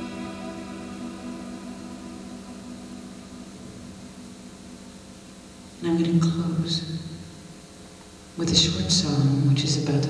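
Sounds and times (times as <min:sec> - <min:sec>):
ambient electronic chord: 0:00.0 - 0:07.6
low steady drone: 0:00.0 - 0:07.7.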